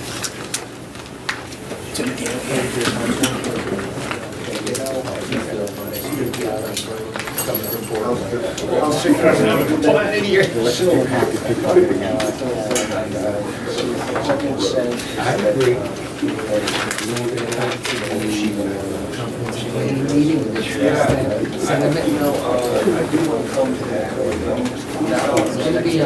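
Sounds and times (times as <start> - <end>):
papers rustling and clicking: 0.0 - 8.2, 13.8 - 20.8
men's voices murmuring: 1.7 - 26.0
people talking at once: 1.8 - 26.0.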